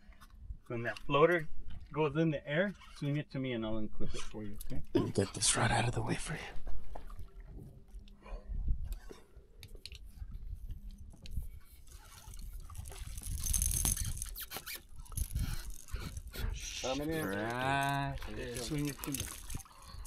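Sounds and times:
fish splashing at water surface: 17.3s - 20.0s.

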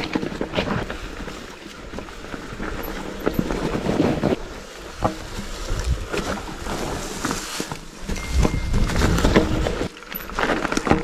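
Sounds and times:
bike knocks and rattles: 0.0s - 11.0s
bike tyres rumbling over dirt: 0.0s - 11.0s
wind buffeting microphone: 2.0s - 7.2s, 8.1s - 9.9s.

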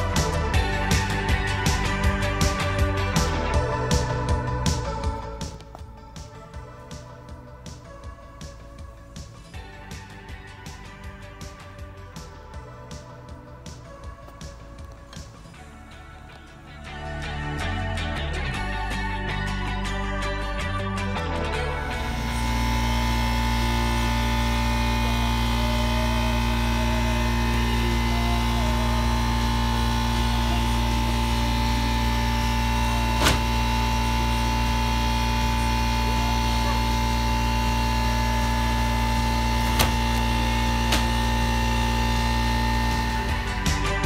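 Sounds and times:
steady machine hum: 21.8s - 44.0s.

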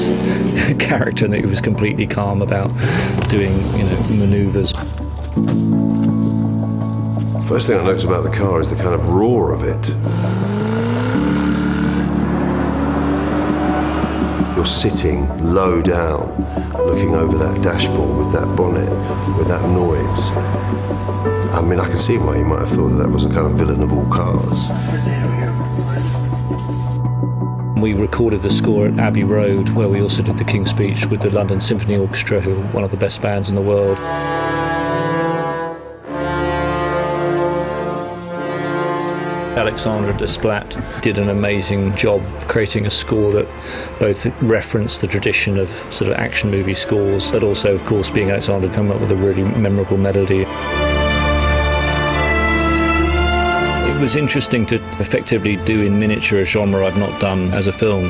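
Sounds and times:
orchestral brass chords: 0.0s - 2.8s, 5.4s - 32.9s, 33.6s - 42.5s, 43.4s - 58.0s
car engine roaring under acceleration: 9.6s - 15.4s.

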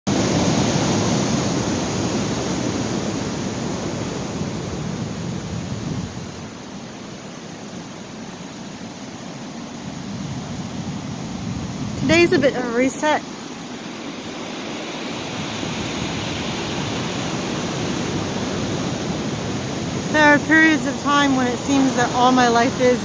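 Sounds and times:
ocean surf breaking on beach: 0.1s - 23.0s.

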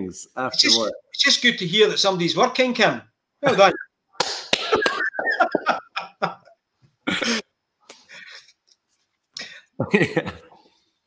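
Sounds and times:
hands clapping: 4.2s - 5.3s
man laughing: 4.6s - 7.4s, 9.8s - 10.6s.

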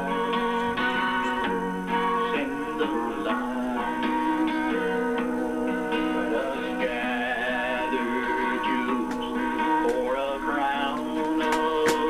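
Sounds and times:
backing track: 0.0s - 12.0s
man singing gospel song: 0.0s - 12.0s.

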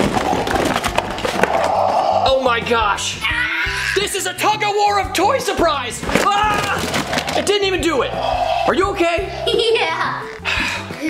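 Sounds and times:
cardboard scraping and crackling: 0.0s - 1.7s, 6.0s - 7.6s.

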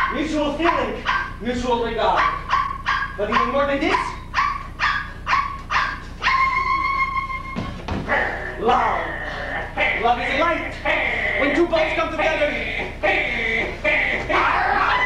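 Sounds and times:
dog-like yelping: 1.0s - 1.4s, 2.0s - 11.6s, 12.2s - 15.0s
quick barks: 1.0s - 1.4s, 2.1s - 6.4s
high held tone: 2.5s - 8.8s.

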